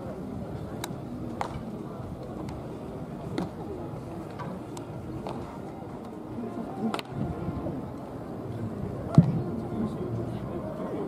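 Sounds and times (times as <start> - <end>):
faint background voices: 0.0 - 11.0
wind on microphone: 7.1 - 7.9.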